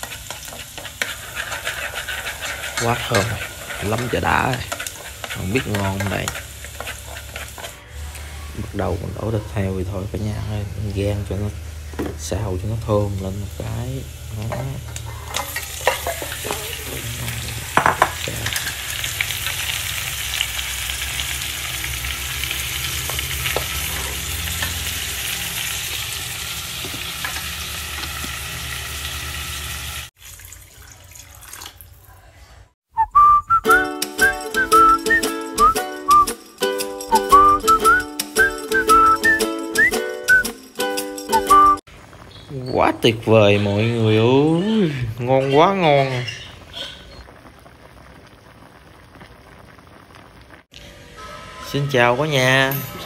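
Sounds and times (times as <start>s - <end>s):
knocks and scrapes in a pot: 0.0s - 7.8s, 14.4s - 17.1s
meat sizzling in hot oil: 0.0s - 7.8s, 8.6s - 31.1s, 45.4s - 50.7s
background music with steady beat: 33.6s - 41.8s.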